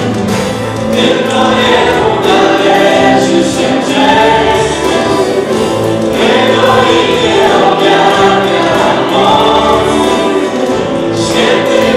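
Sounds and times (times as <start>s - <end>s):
strummed acoustic guitar: 0.0s - 11.9s
man singing: 0.9s - 11.9s.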